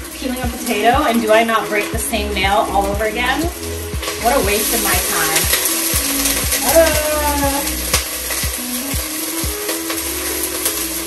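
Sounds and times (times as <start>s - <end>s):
background music with steady beat: 0.0s - 11.0s
chicken sizzling in a pot: 0.0s - 11.0s.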